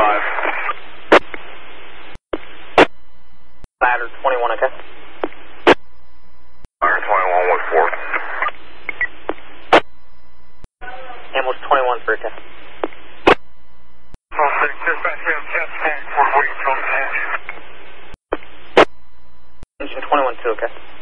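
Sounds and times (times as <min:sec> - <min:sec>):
radio voice transmissions: 0:00.0 - 0:01.3, 0:03.8 - 0:05.0, 0:06.8 - 0:09.0, 0:10.8 - 0:12.5, 0:14.3 - 0:17.6, 0:19.8 - 0:20.8
radio static hiss: 0:00.0 - 0:03.0, 0:03.8 - 0:06.0, 0:06.8 - 0:09.9, 0:11.2 - 0:13.5, 0:14.3 - 0:19.0, 0:19.8 - 0:21.0
radio squelch clicks: 0:18.3 - 0:18.9.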